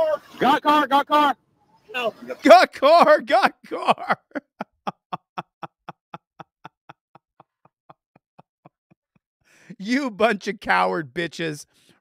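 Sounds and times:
man laughing: 2.5 - 9.2.

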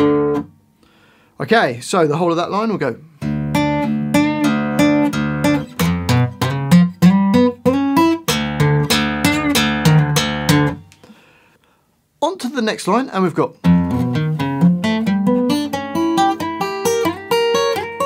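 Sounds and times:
fingerpicked acoustic guitar: 0.0 - 0.7, 3.1 - 11.0, 13.6 - 18.0.

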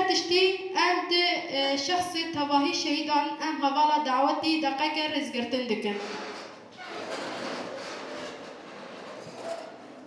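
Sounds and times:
chairs scraping: 5.9 - 10.0.

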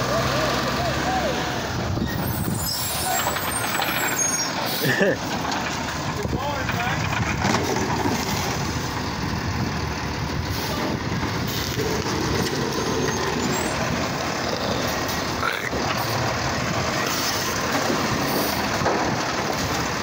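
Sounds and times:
garbage truck engine and hydraulics: 0.0 - 20.0.

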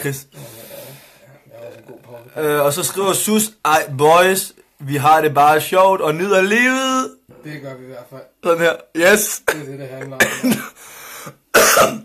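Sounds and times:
breathy exhale: 0.3 - 1.4
man coughing: 9.4 - 12.0.

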